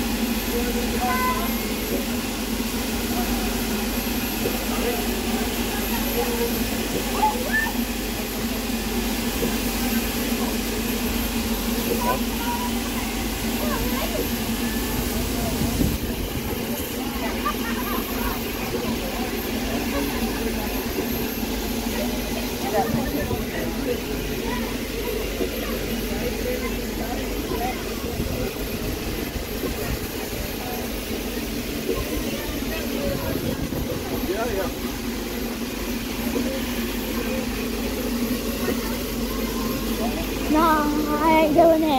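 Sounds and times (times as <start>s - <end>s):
steam hissing: 0.0s - 41.9s
people chattering: 0.4s - 41.9s.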